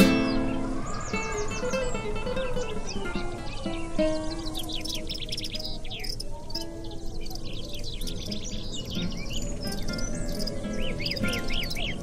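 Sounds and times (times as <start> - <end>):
birds singing: 0.0 - 12.0
soft guitar music: 0.0 - 12.0.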